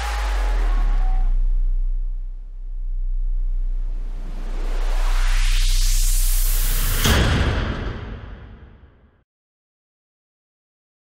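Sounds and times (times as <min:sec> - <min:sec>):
deep cinematic boom: 0:00.0 - 0:09.0.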